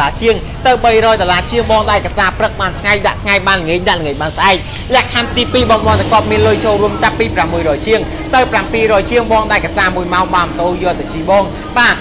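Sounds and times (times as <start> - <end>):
person talking quickly: 0.0 - 12.0.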